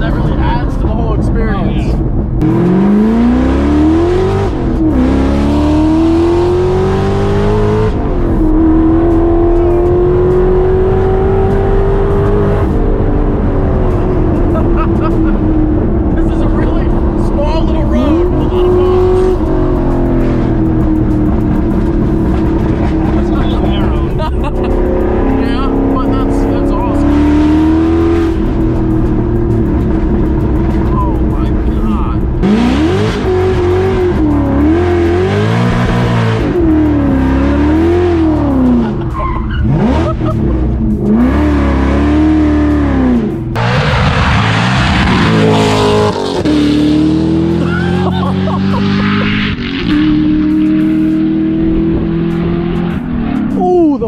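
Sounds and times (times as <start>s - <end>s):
car driving away: 0.0s - 54.0s
car engine revving: 0.0s - 54.0s.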